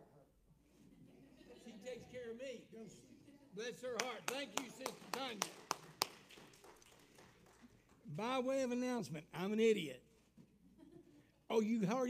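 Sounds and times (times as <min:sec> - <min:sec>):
hand clap echoing: 0:03.9 - 0:08.3.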